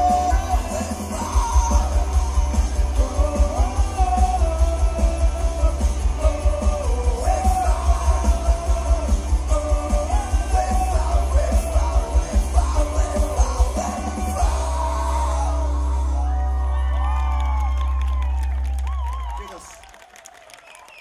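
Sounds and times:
live rock band playing: 0.0s - 16.6s
person singing: 0.0s - 16.8s.

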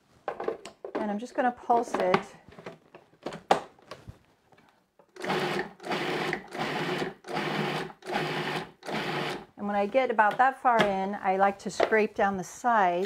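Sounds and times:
food processor pulsing: 5.2s - 9.4s.

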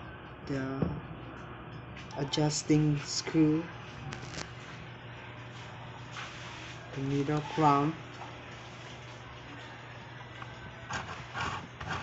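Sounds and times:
low hum: 0.0s - 11.8s.

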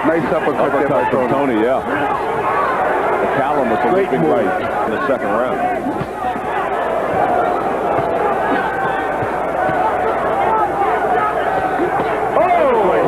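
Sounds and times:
crowd shouting and calling out: 0.0s - 13.0s.

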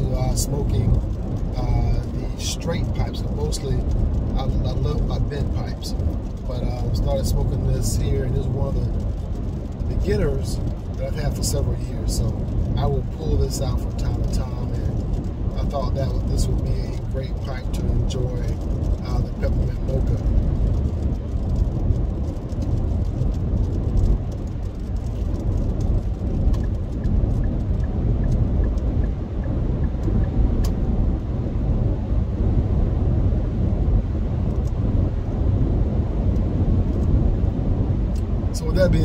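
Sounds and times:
car road and engine rumble: 0.0s - 39.0s.

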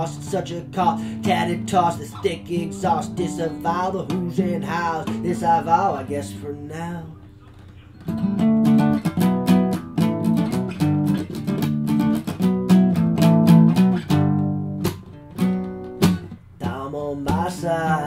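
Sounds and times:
acoustic guitar strumming: 0.0s - 7.2s, 8.0s - 18.0s.

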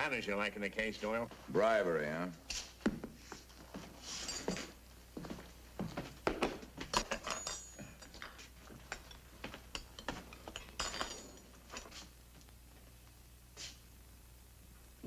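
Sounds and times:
crockery and cutlery clattering: 6.9s - 11.9s.

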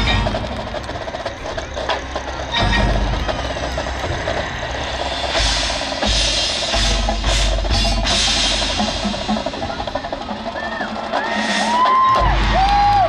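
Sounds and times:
marching band playing: 0.0s - 13.0s
percussion strikes: 0.0s - 13.0s.

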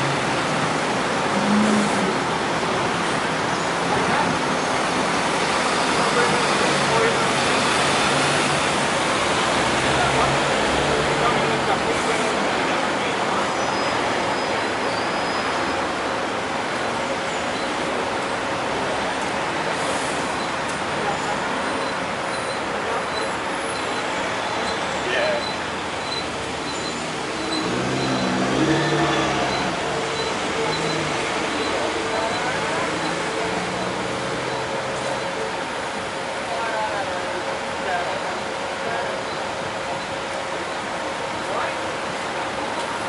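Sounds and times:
bus engine humming: 0.0s - 43.0s
road traffic: 0.0s - 43.0s.

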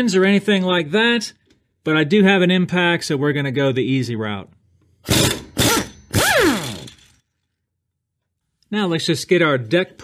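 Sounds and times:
impact wrench hammering: 5.0s - 7.2s.

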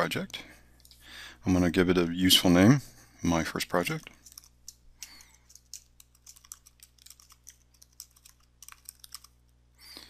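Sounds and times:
keyboard keys clicking: 4.2s - 9.3s.

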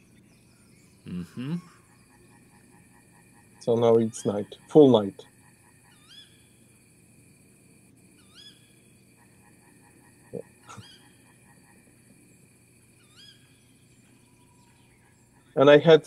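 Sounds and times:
faint steady hiss: 0.0s - 16.0s
animal call with curving pitch: 1.0s - 6.7s, 8.2s - 12.1s.

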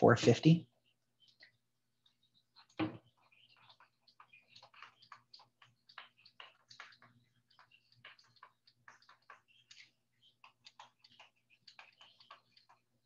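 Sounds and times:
stylus tapping on graphics tablet: 1.2s - 13.0s.

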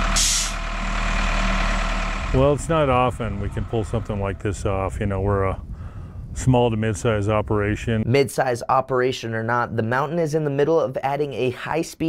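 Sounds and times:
hiss burst: 0.0s - 0.6s
diesel engine running under load: 0.0s - 6.0s.

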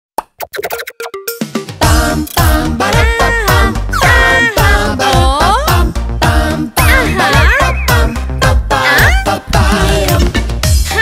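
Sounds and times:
cartoon pop sound effects: 0.2s - 1.3s
children's music jingle: 0.7s - 11.0s.

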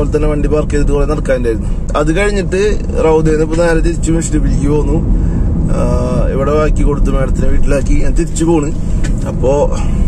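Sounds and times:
man talking: 0.0s - 5.0s, 5.7s - 10.0s
car low rumble: 0.0s - 10.0s.

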